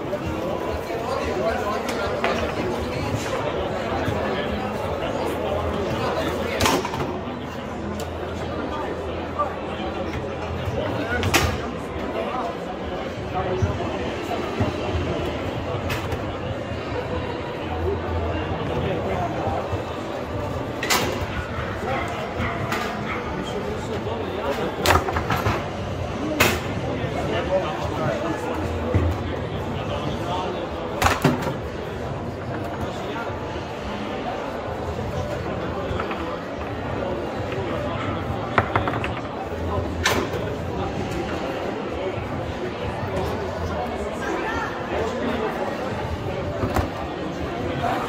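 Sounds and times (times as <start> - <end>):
chatter in a hall: 0.0 - 48.0
foosball ball and rods clacking: 38.5 - 39.4
foosball sharp knock: 38.6 - 39.2.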